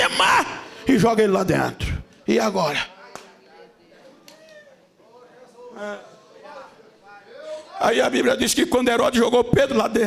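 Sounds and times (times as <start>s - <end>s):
man speaking loudly: 0.0s - 2.9s, 5.3s - 10.0s
faint voices in a hall: 0.0s - 10.0s.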